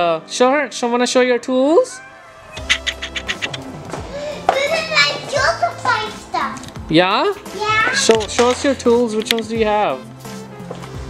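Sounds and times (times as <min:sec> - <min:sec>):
background music: 0:00.0 - 0:11.0
girl speaking: 0:04.1 - 0:06.7, 0:07.5 - 0:08.2.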